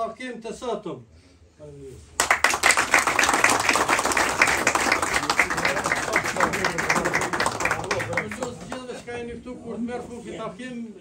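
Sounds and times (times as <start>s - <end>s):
audience applause: 2.2s - 8.8s.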